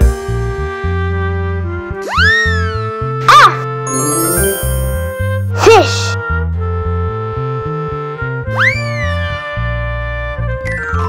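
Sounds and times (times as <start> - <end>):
cartoon pitch sweep effect: 3.4 - 5.9
children's background music: 3.4 - 6.2.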